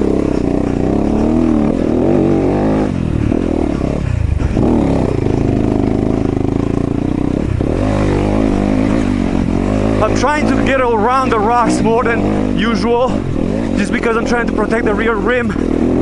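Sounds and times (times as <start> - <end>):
dirt bike engine revving: 0.0 - 16.0.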